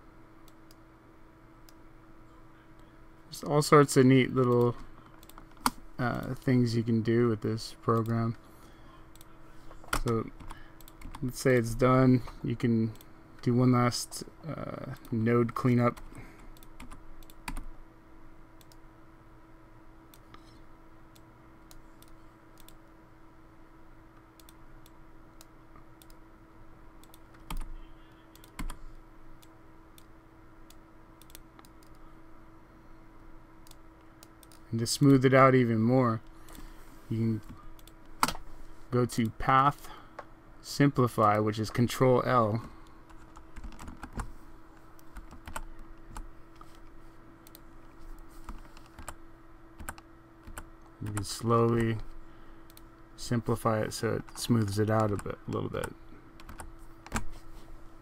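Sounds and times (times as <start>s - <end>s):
low electrical hum: 0.0s - 58.0s
computer keyboard keystrokes: 27.0s - 27.7s, 28.4s - 28.8s, 43.1s - 44.3s, 45.0s - 46.2s, 49.8s - 51.8s, 55.0s - 57.3s.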